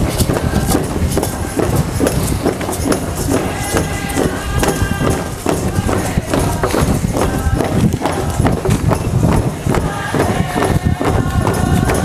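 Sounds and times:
hand-drum beats: 0.0s - 12.0s
voices singing or chanting: 0.0s - 12.0s.

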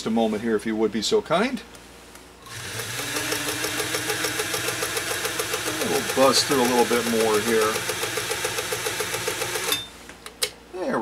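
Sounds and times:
sewing machine stitching: 2.5s - 9.8s.

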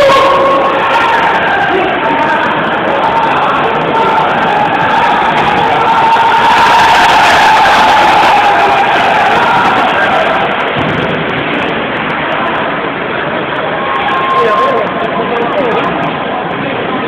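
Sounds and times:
crowd shouting in echoing hall: 0.0s - 17.0s.

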